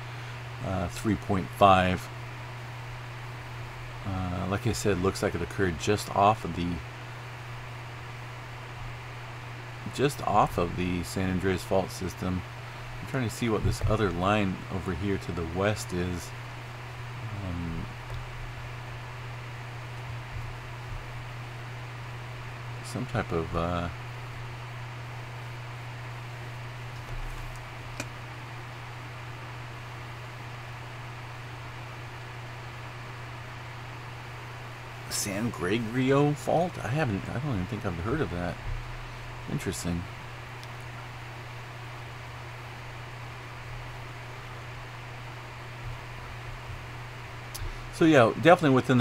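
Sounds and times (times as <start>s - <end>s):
constant low hum: 0.0s - 49.0s
steady background hiss: 0.0s - 49.0s.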